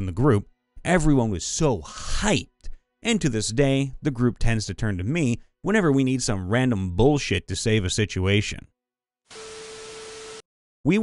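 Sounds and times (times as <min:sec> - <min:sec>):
static hiss: 0:09.3 - 0:10.4.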